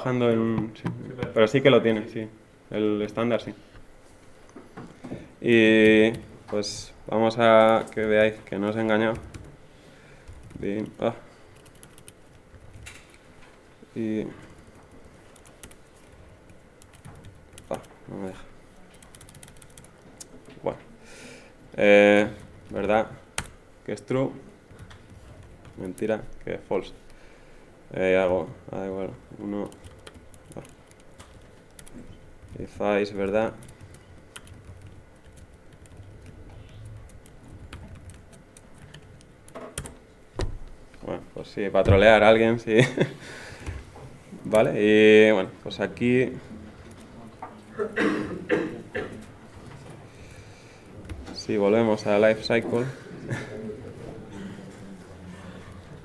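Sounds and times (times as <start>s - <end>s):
low room hum: 0.0s - 56.0s
laptop keyboard keystrokes: 10.2s - 13.2s, 14.9s - 18.0s, 18.9s - 20.5s, 22.2s - 23.6s, 29.5s - 40.8s.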